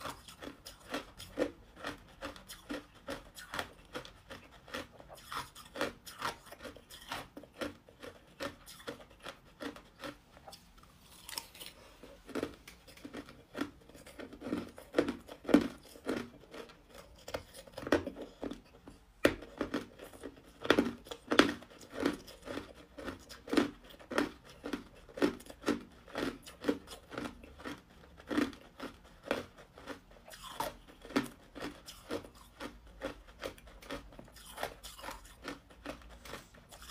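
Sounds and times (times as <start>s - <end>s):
ice crunching between teeth: 0.0s - 36.9s.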